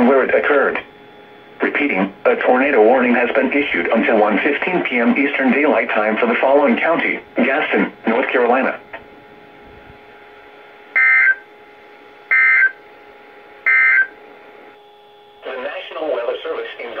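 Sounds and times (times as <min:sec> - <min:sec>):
radio hiss: 0:00.0 - 0:10.3
person speaking over radio: 0:01.6 - 0:08.9
digital data tone bursts: 0:11.0 - 0:11.4, 0:12.3 - 0:12.8, 0:13.7 - 0:14.2.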